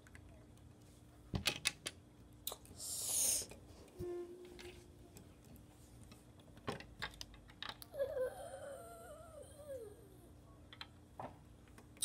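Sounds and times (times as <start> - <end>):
child humming: 7.9 - 10.4.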